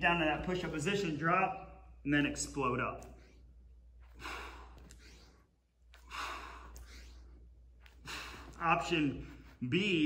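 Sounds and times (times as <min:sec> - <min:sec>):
man breathing heavily: 0:03.2 - 0:09.6.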